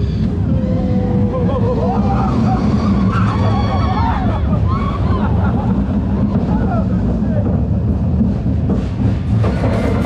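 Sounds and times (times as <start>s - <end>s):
high wavering squeals: 0.0s - 5.3s
roller coaster train rumbling: 0.0s - 10.0s.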